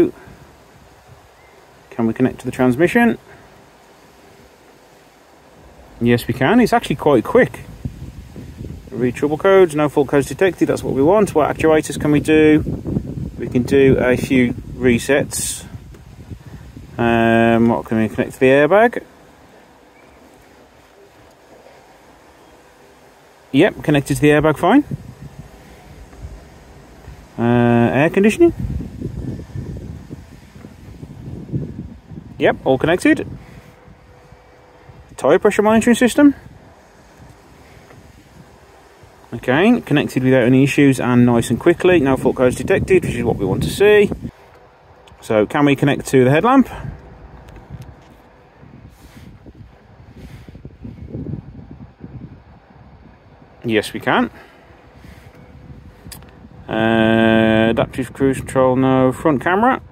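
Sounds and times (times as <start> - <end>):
low background rumble: 0.0 - 58.5
faint steady hum: 0.0 - 59.9.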